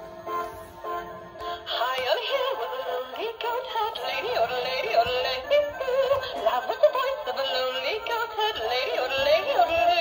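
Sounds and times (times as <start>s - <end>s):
music backing: 0.0s - 10.0s.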